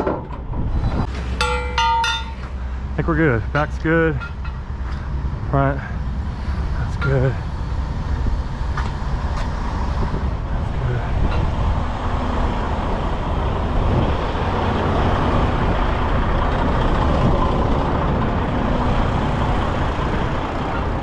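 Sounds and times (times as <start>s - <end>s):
diesel truck engine idling: 1.4s - 21.0s.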